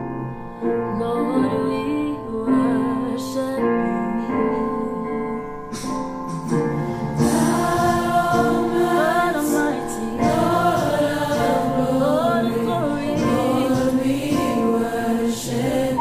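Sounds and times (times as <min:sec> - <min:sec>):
gospel choir singing: 0:06.8 - 0:16.0.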